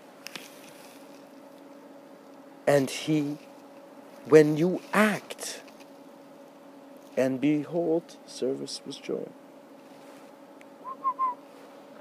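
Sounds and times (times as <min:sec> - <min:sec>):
steady faint hum: 0:00.0 - 0:12.0
high whistle-like chirps: 0:10.8 - 0:11.4.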